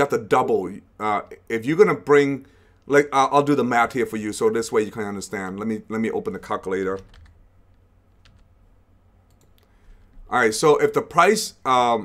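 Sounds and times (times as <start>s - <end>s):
low steady hum: 0.0s - 12.0s
keyboard and mouse clicks: 7.0s - 8.5s, 9.3s - 10.2s.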